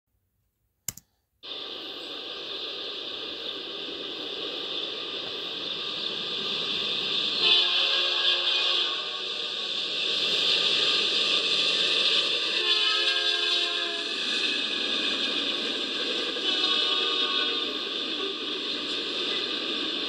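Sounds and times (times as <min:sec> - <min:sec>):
steady hiss: 0:01.4 - 0:12.6
locomotive air horn blasts: 0:07.4 - 0:09.4, 0:12.5 - 0:14.2, 0:16.4 - 0:17.9.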